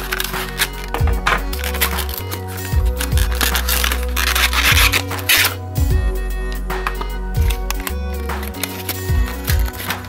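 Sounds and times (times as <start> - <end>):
cardboard box scraping: 0.0 - 5.6
background music: 0.0 - 10.0.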